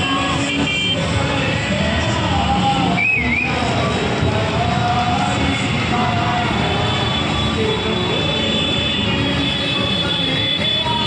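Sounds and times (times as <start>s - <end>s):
crowd: 0.0s - 11.0s
motor traffic: 0.0s - 11.0s
music playing: 0.0s - 11.0s.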